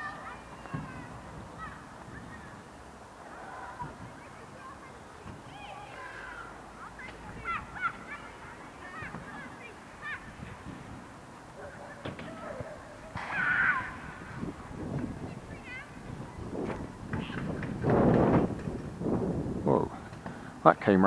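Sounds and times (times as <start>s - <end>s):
low wind rumble: 0.0s - 11.6s, 12.3s - 20.8s.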